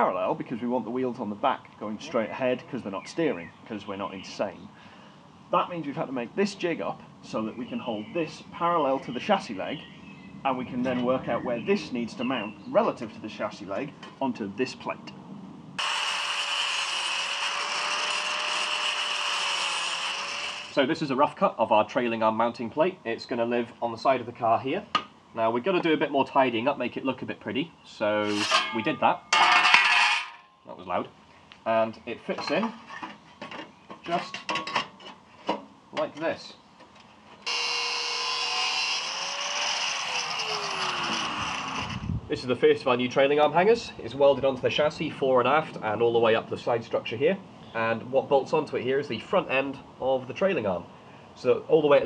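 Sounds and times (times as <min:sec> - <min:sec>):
angle grinder cutting steel: 0:15.8 - 0:20.8, 0:28.2 - 0:28.8, 0:37.4 - 0:42.0.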